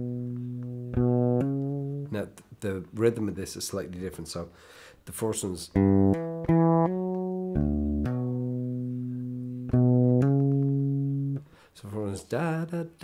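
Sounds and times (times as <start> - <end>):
electric bass guitar: 0.0 - 2.2, 5.7 - 11.5.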